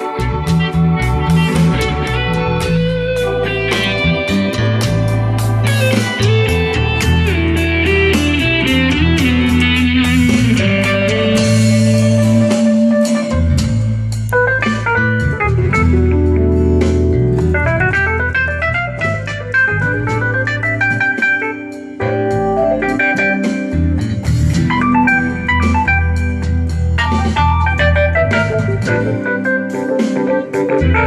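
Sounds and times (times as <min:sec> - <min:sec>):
bass and guitars: 0:00.0 - 0:31.0
organ keyboard solo: 0:00.0 - 0:31.0.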